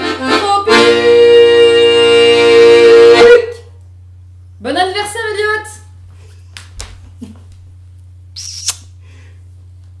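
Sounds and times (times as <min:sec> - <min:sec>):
blown kiss squeaky smack: 0:08.4 - 0:08.9.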